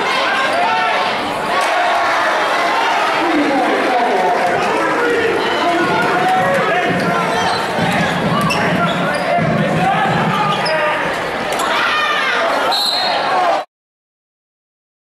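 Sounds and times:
players calling out: 0.0 - 13.6
basketballs dribbling on gym floor: 5.8 - 10.3.

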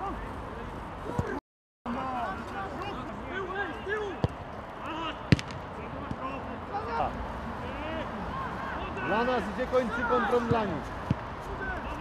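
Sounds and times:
footballers shouting: 0.0 - 12.0
ball being kicked: 5.3 - 6.2.

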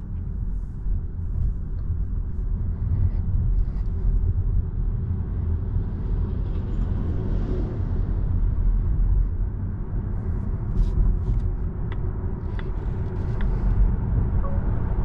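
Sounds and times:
tyre and road noise in car: 0.0 - 15.0.

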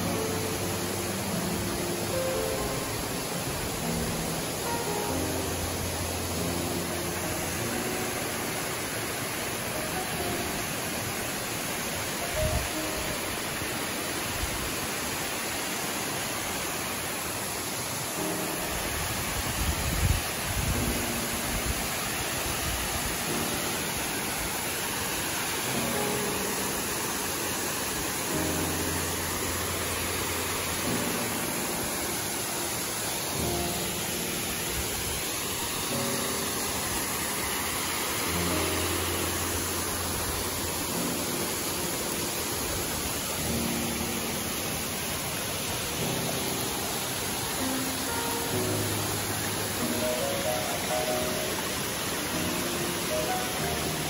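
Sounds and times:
rush of falling water: 0.0 - 54.0
soft background music: 0.0 - 54.0.

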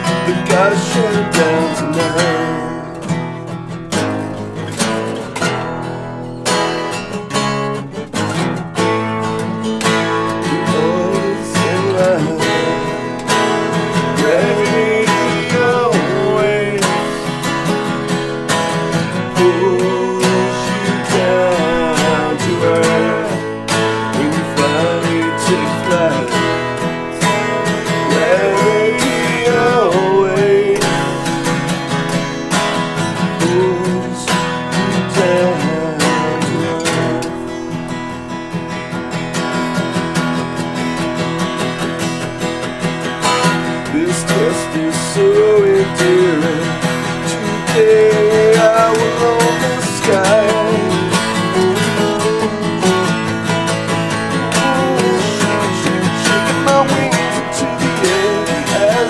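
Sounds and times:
acoustic guitars strumming: 0.0 - 59.0
sliding melodic lead line: 0.0 - 59.0.

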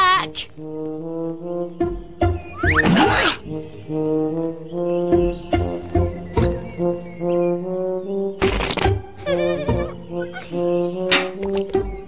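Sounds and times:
low brass cartoon music: 0.5 - 12.0.

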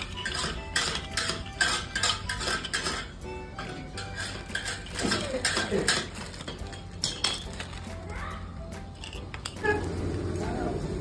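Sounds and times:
brittle discs clinking together: 0.0 - 8.1, 8.8 - 9.6.

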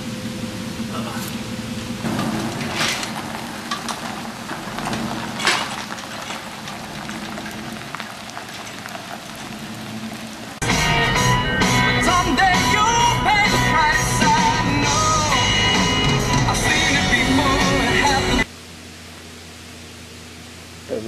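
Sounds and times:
van engine humming: 0.0 - 21.0
music with singing: 10.6 - 18.5.

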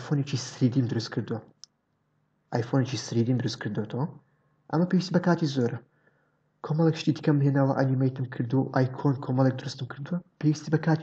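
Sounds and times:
person speaking: 0.0 - 1.7, 2.5 - 5.9, 6.6 - 11.0.

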